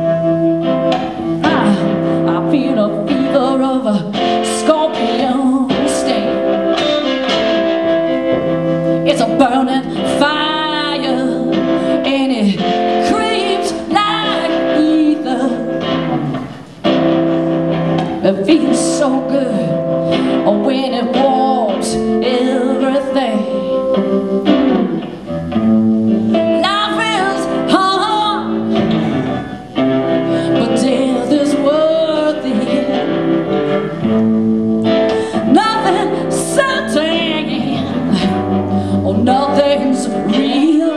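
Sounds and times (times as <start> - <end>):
woman singing: 0.0 - 16.4, 18.0 - 25.1, 26.3 - 29.0, 29.8 - 34.2, 34.8 - 40.9
blues-rock band playing: 0.0 - 40.9.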